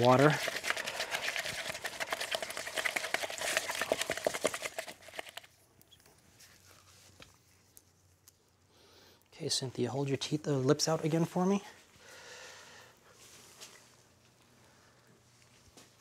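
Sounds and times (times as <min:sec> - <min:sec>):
alginate stirred in paper cup: 0:00.0 - 0:05.6.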